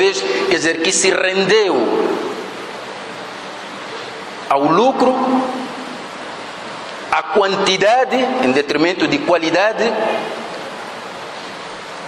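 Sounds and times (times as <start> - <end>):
man speaking into a microphone: 0.0 - 2.3, 4.5 - 5.8, 7.1 - 10.5.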